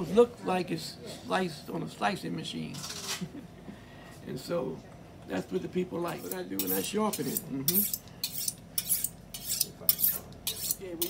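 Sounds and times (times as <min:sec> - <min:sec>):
knife scraping on honing steel: 0:06.1 - 0:11.0.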